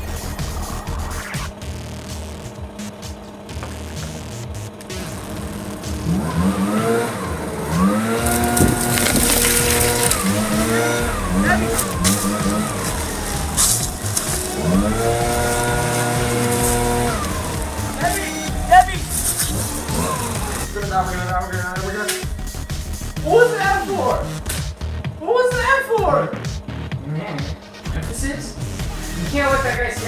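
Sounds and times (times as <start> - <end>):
leaf blower engine revving: 0.0 - 30.0.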